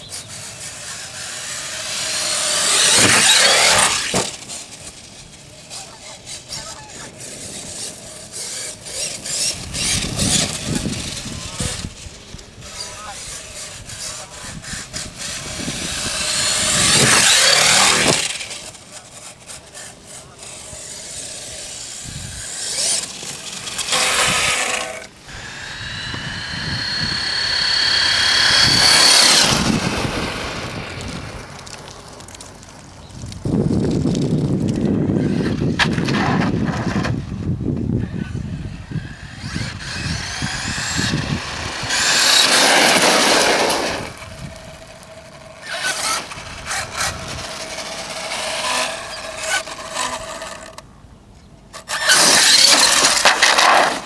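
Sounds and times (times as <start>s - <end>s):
electric motor whining: 0.0s - 12.0s, 12.7s - 31.3s, 38.0s - 50.8s, 51.8s - 54.0s
tyres crunching over gravel: 22.6s - 35.1s, 39.4s - 50.7s.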